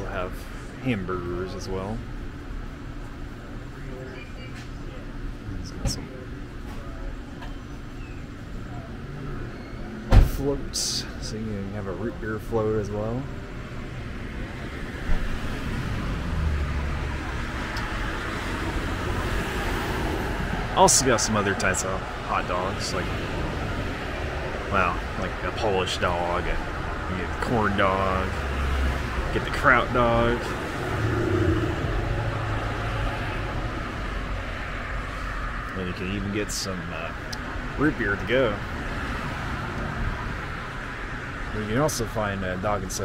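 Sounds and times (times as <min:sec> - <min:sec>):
low vehicle rumble: 0:00.0 - 0:42.9
road traffic noise: 0:00.0 - 0:43.0.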